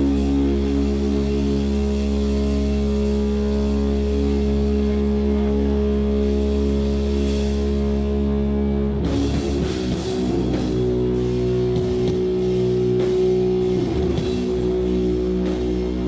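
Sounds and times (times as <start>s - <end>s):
distorted guitar and bass drone: 0.0s - 16.0s.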